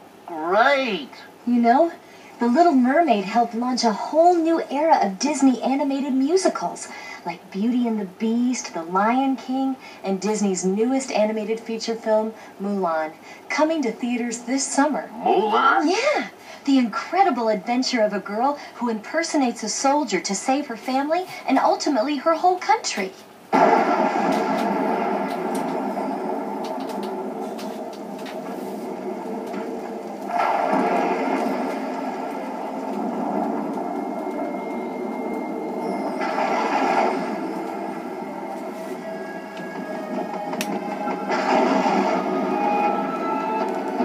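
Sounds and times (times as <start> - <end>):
film trailer music: 24.3 - 44.0.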